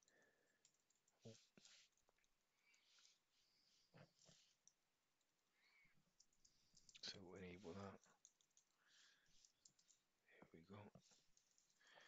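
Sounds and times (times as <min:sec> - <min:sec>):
computer keyboard typing: 0:00.0 - 0:01.8, 0:08.1 - 0:10.0, 0:11.3 - 0:11.8.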